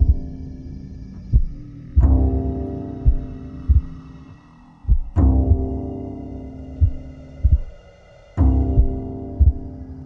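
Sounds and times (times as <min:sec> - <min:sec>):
low sustained chord: 0:00.0 - 0:10.0.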